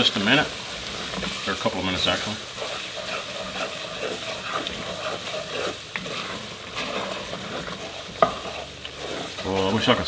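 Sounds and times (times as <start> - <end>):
spatula scraping pot: 0.0 - 10.0
vegetables sizzling in pot: 0.0 - 10.0.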